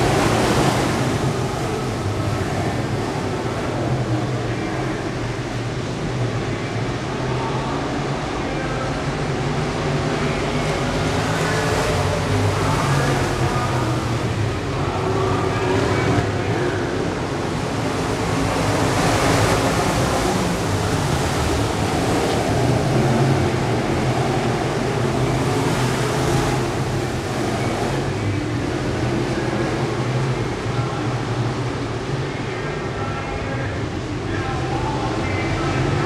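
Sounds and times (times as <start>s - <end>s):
race car engines roaring: 0.0s - 36.0s.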